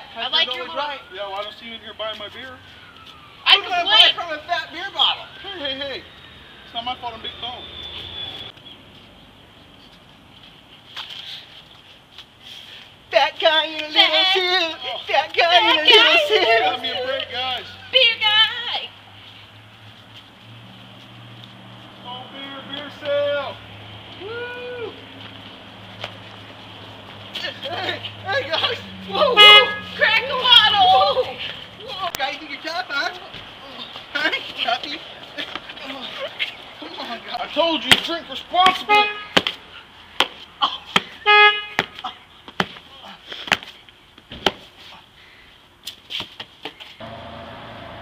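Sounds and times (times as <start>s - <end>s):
horn toot: 29.1s - 30.1s, 41.2s - 41.8s.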